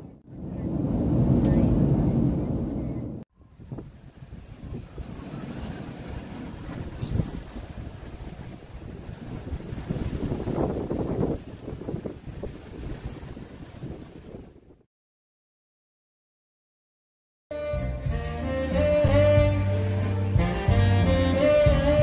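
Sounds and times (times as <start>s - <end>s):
wind gusting on microphone: 0.0s - 14.9s
waves washing on rocks: 3.8s - 14.6s.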